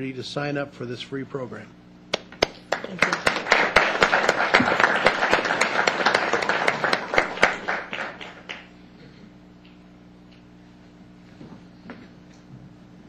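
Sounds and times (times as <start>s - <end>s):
people clapping: 2.1s - 8.7s.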